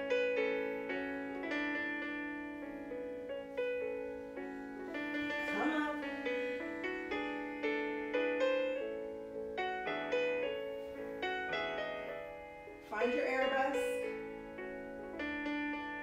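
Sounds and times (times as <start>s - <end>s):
solo piano music: 0.0s - 16.0s.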